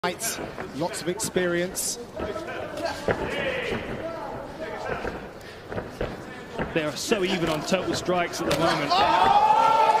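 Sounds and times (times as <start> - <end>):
men talking: 0.0 - 9.5.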